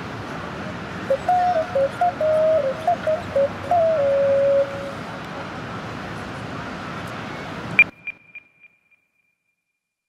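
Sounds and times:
outdoor background noise: 0:00.0 - 0:09.4.

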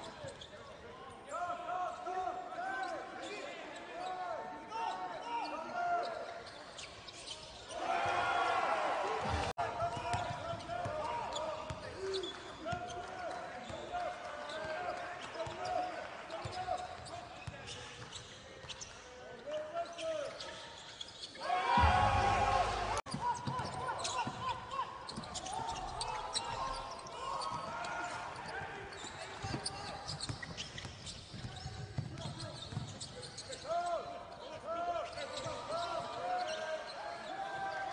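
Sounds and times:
sneaker squeaks: 0:00.0 - 0:00.8, 0:02.7 - 0:07.8, 0:09.4 - 0:21.9, 0:23.1 - 0:37.9.

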